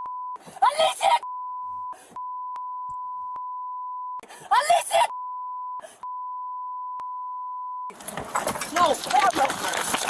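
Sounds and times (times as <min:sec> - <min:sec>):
loud high-pitched yelling: 0:00.6 - 0:01.2, 0:04.5 - 0:05.1
high-pitched censor bleep: 0:01.2 - 0:04.2, 0:05.1 - 0:07.9.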